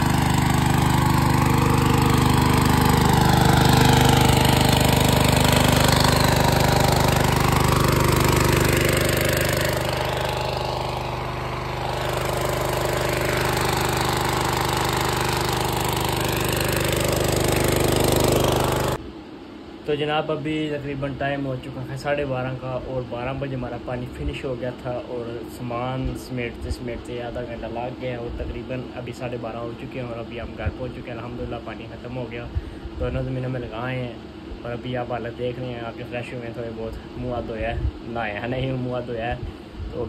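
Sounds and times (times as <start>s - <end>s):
engine running steadily: 0.0s - 19.1s, 29.9s - 40.0s.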